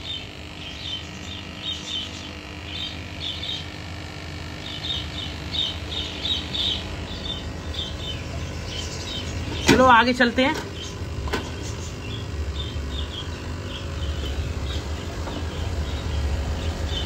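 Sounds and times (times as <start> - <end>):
small birds chirping: 0.0 - 17.0
steady low hum: 0.0 - 17.0.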